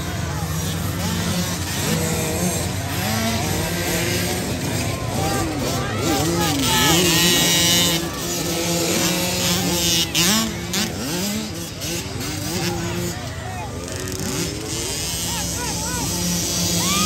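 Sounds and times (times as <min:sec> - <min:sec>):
motocross bike engines revving: 0:00.0 - 0:17.0
spectators talking and calling out: 0:00.0 - 0:17.0.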